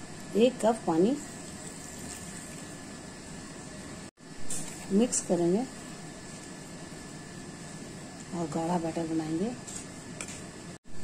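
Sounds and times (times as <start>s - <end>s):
water pouring into flour: 1.3s - 2.9s.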